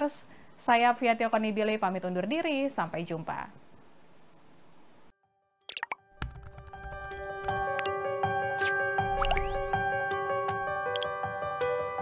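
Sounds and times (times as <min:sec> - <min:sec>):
bright music with mallet notes: 0:06.8 - 0:12.0
gliding blip effects: 0:08.6 - 0:09.8.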